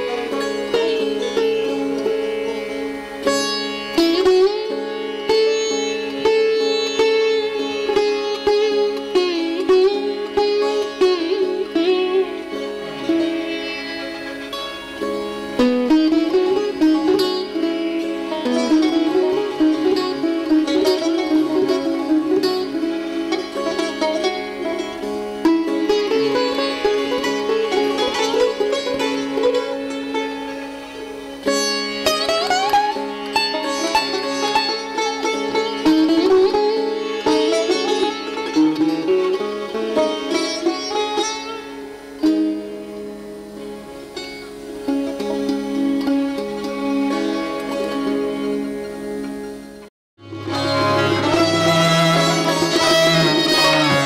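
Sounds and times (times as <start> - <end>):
sitar plucked runs: 0.0 - 54.0.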